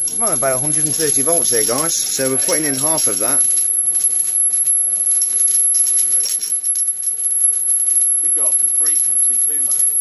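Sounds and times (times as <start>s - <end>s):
high-pitched inverter whine: 0.0s - 10.0s
high-voltage arc crackling: 0.0s - 10.0s.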